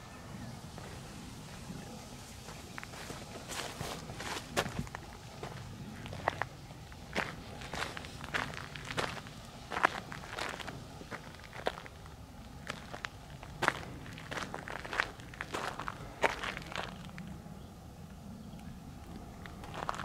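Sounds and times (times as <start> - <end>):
footsteps on gravel: 2.4 - 17.2, 19.1 - 20.0.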